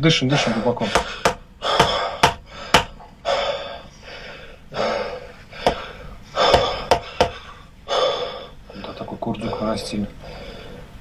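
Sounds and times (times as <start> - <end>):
man breathing deeply and gasping: 0.9 - 8.7
wooden mallet knocking on peg: 1.0 - 2.9.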